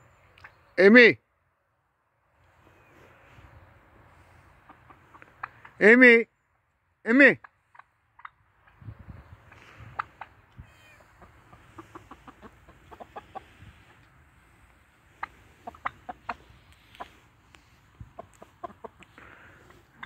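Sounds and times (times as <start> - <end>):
chickens clucking softly: 4.4 - 5.8, 7.4 - 20.0.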